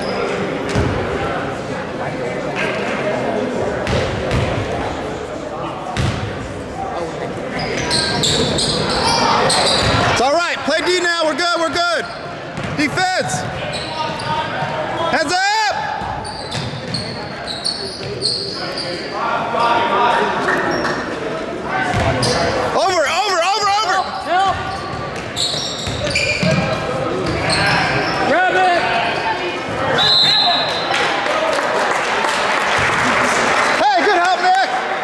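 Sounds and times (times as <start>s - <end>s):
sneakers squeaking: 0.0s - 1.2s, 5.9s - 10.2s, 11.9s - 15.1s, 15.9s - 22.8s, 23.8s - 28.4s
basketball bouncing: 0.7s - 0.9s, 6.0s - 6.3s, 12.6s - 12.8s, 21.9s - 22.1s.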